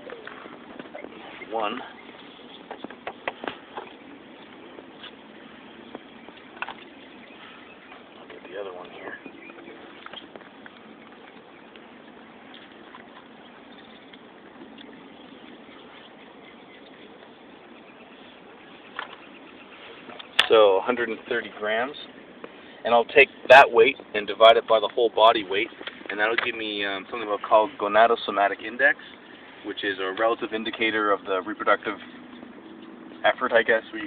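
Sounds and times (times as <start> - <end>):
outdoor background noise: 0.0 - 34.0.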